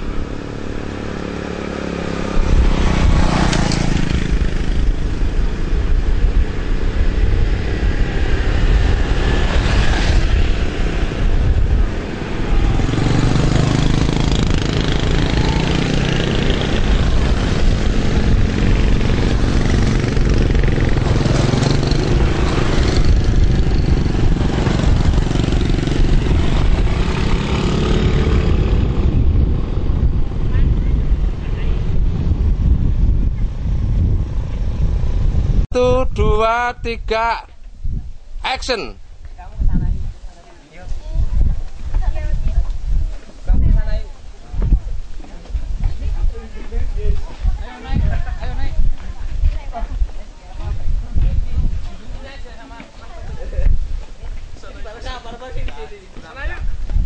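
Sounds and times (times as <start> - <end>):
motorcycles and scooters passing: 0.0 - 35.6.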